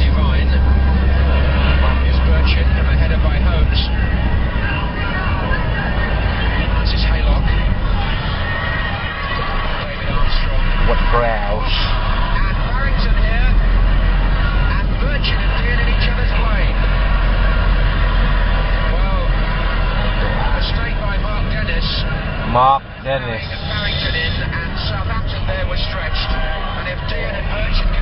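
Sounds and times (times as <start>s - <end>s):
car engine and road noise: 0.0s - 28.0s.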